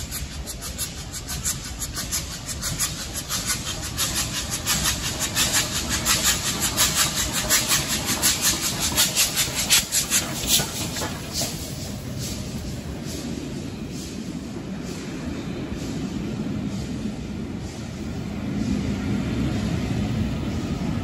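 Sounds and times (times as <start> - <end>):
steam locomotive chuffing: 0.0 - 21.0.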